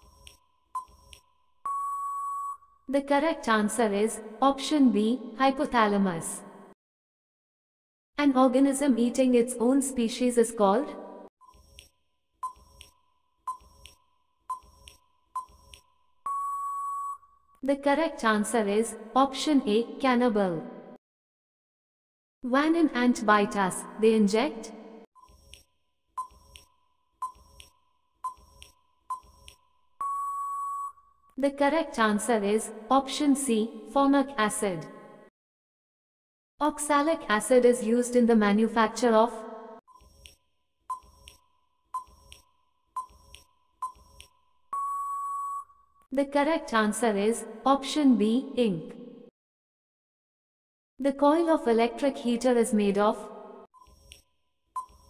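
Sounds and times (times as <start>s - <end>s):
steady timer beep: 0.0s - 2.6s, 11.4s - 17.3s, 26.2s - 31.0s, 39.9s - 45.7s
long steady beep: 1.6s - 2.7s, 16.2s - 17.3s, 29.1s - 31.0s, 44.7s - 45.8s
timer ticks with ringing ping: 42.0s - 45.2s.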